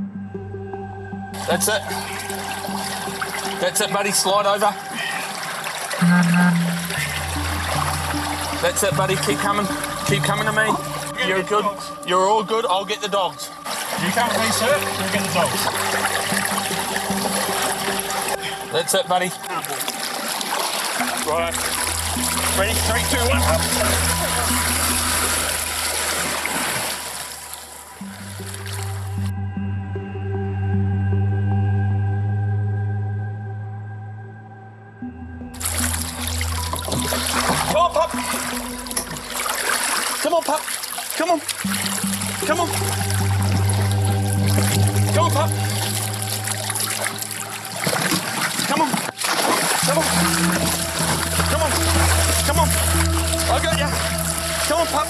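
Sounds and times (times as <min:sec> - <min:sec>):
background music: 0:00.0 - 0:55.0
water sloshing and trickling: 0:01.3 - 0:29.3, 0:35.6 - 0:55.0
rushing floodwater: 0:01.4 - 0:29.1, 0:35.6 - 0:55.0
loud steady low note: 0:06.0 - 0:19.9, 0:21.0 - 0:26.8, 0:41.6 - 0:48.1, 0:49.8 - 0:55.0.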